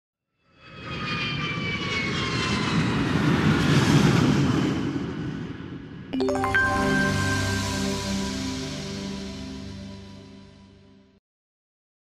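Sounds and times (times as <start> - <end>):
aircraft engine flying past: 0.6 - 5.4
high whine falling in pitch: 6.2 - 11.1.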